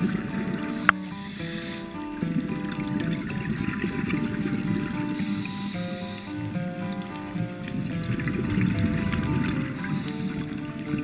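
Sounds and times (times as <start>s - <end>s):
scuba bubbles gurgling underwater: 0.0s - 11.0s.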